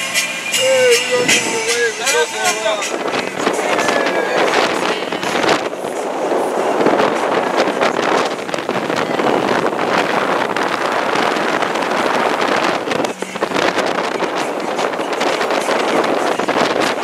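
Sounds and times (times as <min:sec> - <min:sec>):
boat rushing through water: 0:00.0 - 0:17.0
wind buffeting microphone: 0:00.0 - 0:17.0.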